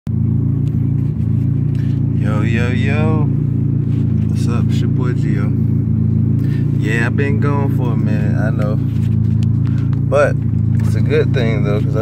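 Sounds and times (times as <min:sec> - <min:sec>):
car engine idling: 0:00.1 - 0:12.0.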